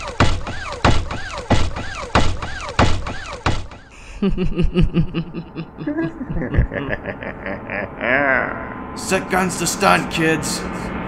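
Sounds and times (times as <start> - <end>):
heavy mechanical footsteps: 0.0 - 4.0.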